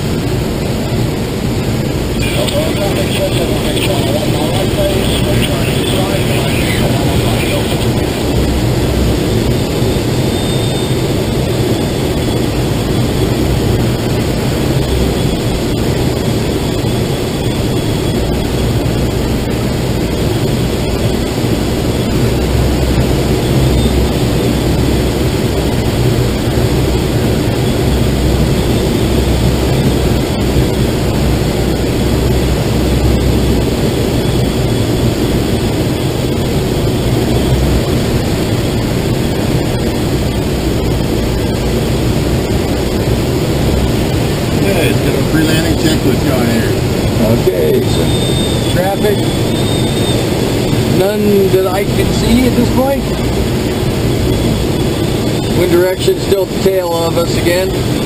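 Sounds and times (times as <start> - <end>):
airflow rushing past cockpit: 0.0 - 58.0.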